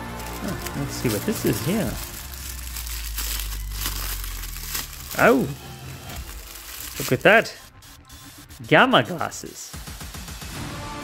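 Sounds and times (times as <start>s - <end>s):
wrapping paper crinkling: 0.0s - 9.4s.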